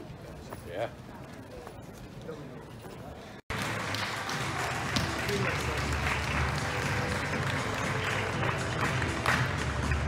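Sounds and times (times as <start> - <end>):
stadium background noise: 0.0 - 10.0.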